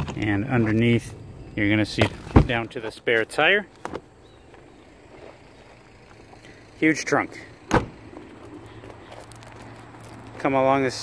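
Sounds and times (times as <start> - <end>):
faint footsteps on gravel: 1.9 - 11.0.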